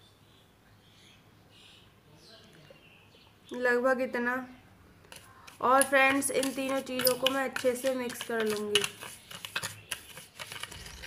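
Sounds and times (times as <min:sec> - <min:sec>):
spoon scraping a dish: 0:05.1 - 0:11.0.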